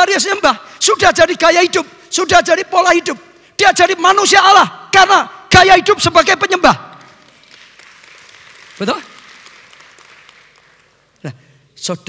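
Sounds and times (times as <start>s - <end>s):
congregation applauding: 6.4s - 11.4s.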